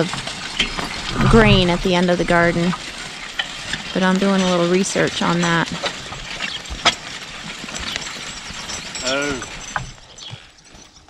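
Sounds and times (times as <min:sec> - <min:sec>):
harrow scraping through soil: 0:00.0 - 0:09.0.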